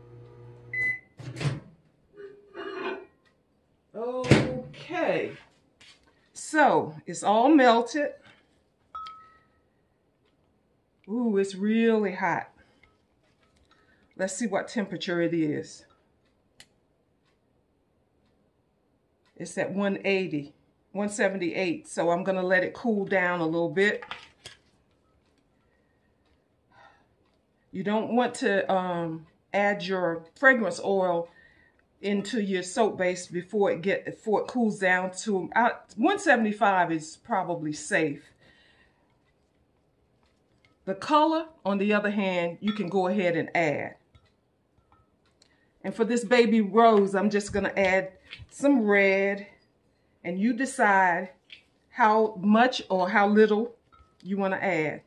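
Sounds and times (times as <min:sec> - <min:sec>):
microwave oven humming: 0:00.0 - 0:01.1
microwave beep: 0:00.1 - 0:01.2, 0:09.0 - 0:09.6
stirring stick knocking glass cup: 0:42.7 - 0:43.0.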